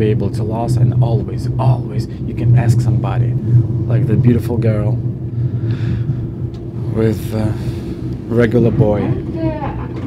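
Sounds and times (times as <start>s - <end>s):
electric train rumble inside carriage: 0.0s - 10.0s.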